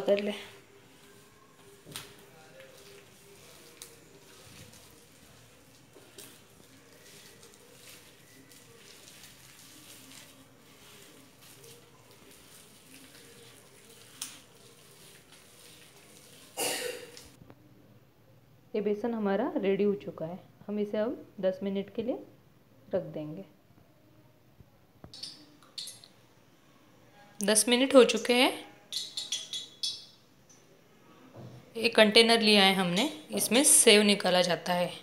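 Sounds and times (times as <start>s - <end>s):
hands squishing dough: 0.0s - 17.4s.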